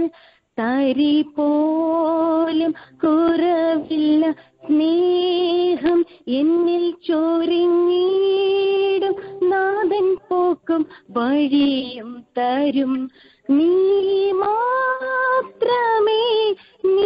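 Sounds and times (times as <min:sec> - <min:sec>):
woman singing over telephone: 0:00.6 - 0:17.0.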